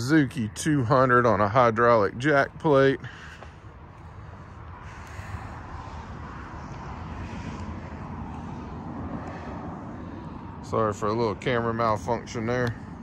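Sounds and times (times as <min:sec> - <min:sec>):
distant engine rumble: 0:00.0 - 0:13.0.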